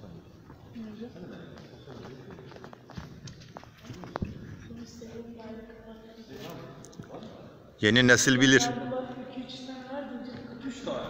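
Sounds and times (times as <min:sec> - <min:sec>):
people talking quietly: 0:00.0 - 0:11.0.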